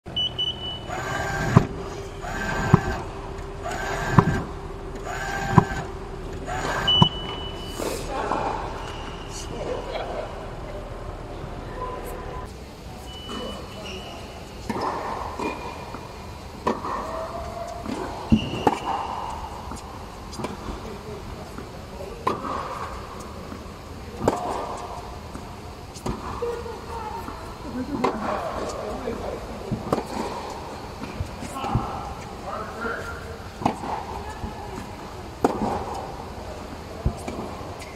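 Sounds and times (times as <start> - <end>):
voices: 0.2 - 37.9
racket hitting tennis balls: 14.6 - 27.4, 29.6 - 37.9.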